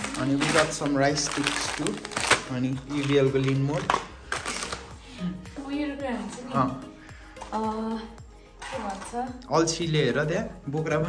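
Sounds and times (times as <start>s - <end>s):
plastic packaging rustling: 0.0s - 5.0s
background music: 0.0s - 11.0s.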